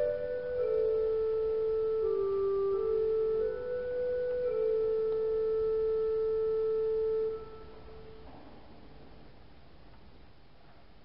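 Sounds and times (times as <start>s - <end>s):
pipe organ note: 0.0s - 8.3s.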